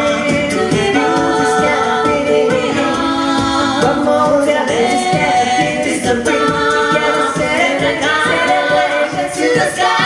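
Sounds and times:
vocal group singing in harmony: 0.0s - 10.0s
vocal percussion beat: 0.0s - 10.0s.

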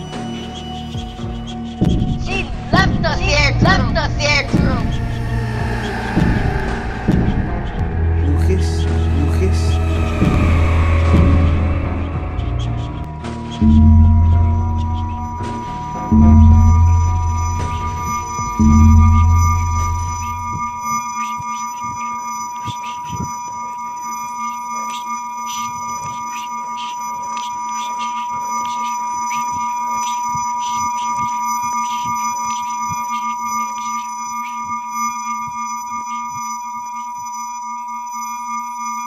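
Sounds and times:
high-pitched electronic whine: 0.0s - 39.0s
low hum: 1.7s - 33.4s
deep boom: 1.8s - 20.8s.

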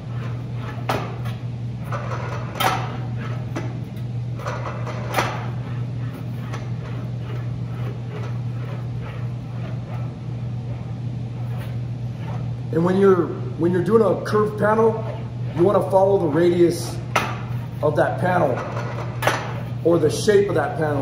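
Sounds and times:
steady low hum: 0.0s - 21.0s
metal panel rolling: 0.2s - 3.8s.

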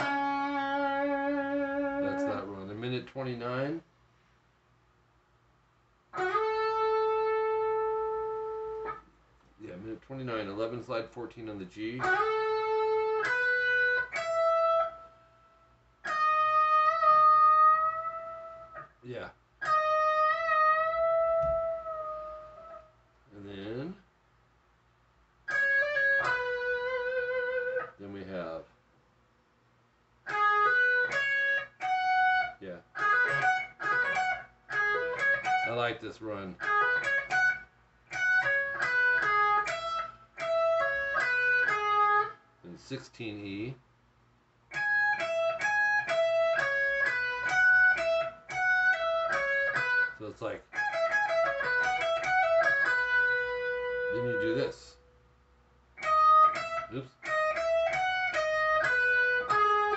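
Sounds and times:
electric guitar picked notes: 0.0s - 2.6s, 6.2s - 9.0s, 11.9s - 15.1s, 16.0s - 18.9s, 19.6s - 22.9s, 25.5s - 28.0s, 30.2s - 35.9s, 36.6s - 42.4s, 44.7s - 55.0s, 56.0s - 59.9s.

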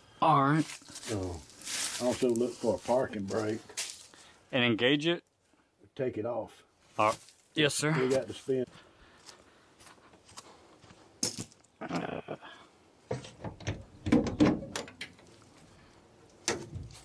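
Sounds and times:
metal clunks and knocks: 13.1s - 15.3s, 16.4s - 17.0s.

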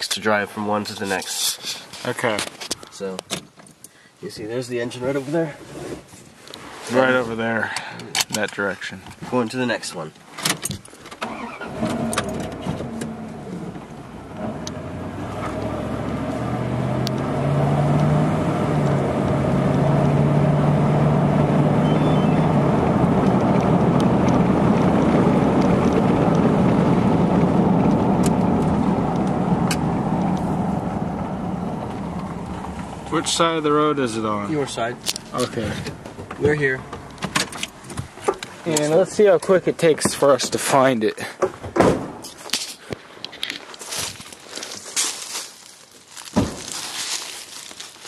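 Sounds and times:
road noise: 0.0s - 48.0s
truck engine accelerating: 11.2s - 37.8s.

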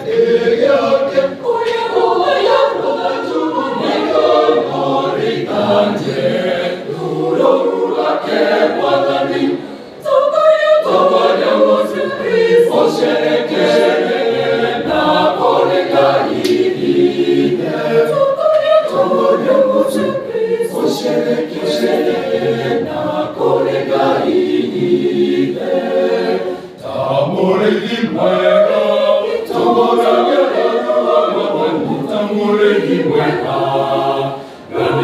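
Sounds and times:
choir singing a hymn: 0.0s - 35.0s.

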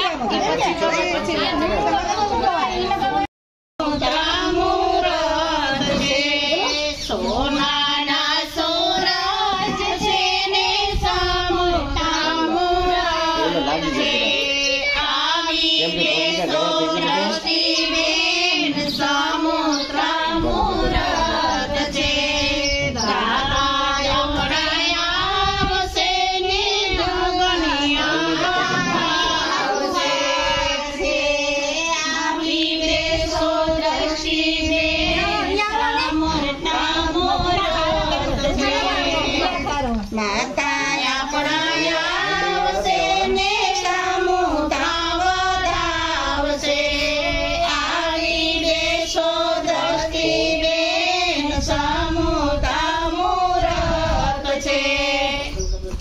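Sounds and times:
women singing folk song: 0.0s - 55.9s.

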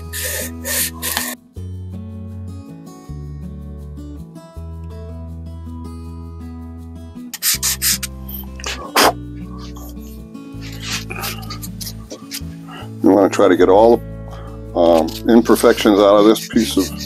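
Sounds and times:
sandpaper rasping on wood: 0.0s - 1.4s, 7.4s - 9.8s, 14.9s - 17.0s
background music with held notes: 0.0s - 17.0s.

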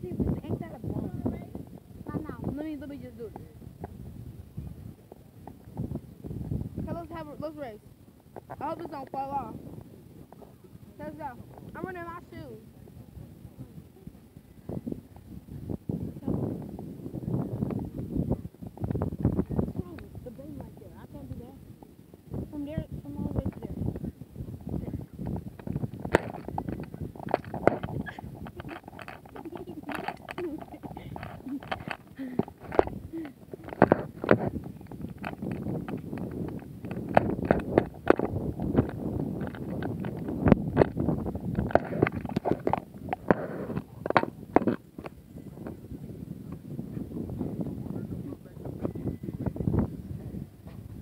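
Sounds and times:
microphone rubbing on clothing: 0.0s - 7.7s, 8.4s - 51.0s
low rumble: 0.0s - 51.0s
indistinct voices: 19.3s - 34.8s.

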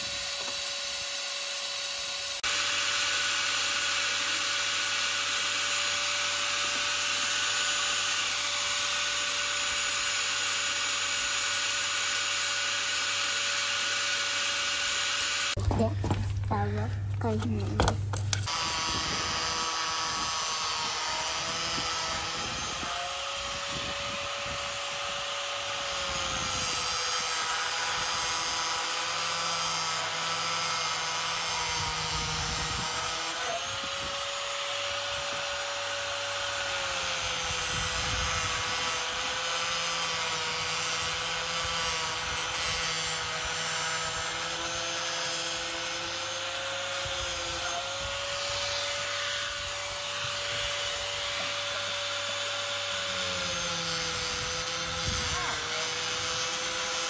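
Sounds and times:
angle grinder running: 0.0s - 15.6s, 18.4s - 57.0s.

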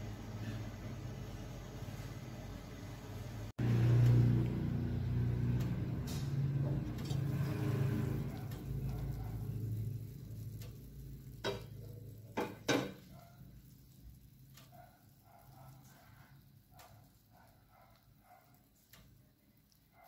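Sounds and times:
pot boiling with low bubbling: 0.0s - 20.0s.

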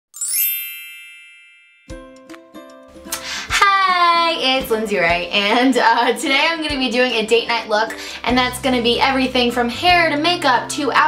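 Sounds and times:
bell-like chime ding: 0.2s - 2.3s
plucked-string tune: 1.9s - 4.8s.

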